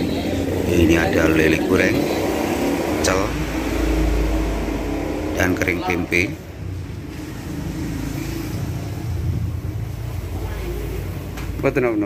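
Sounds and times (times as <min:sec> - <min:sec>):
man speaking: 0:00.6 - 0:02.3, 0:03.0 - 0:03.6, 0:05.4 - 0:06.5
low rumble: 0:00.6 - 0:07.4.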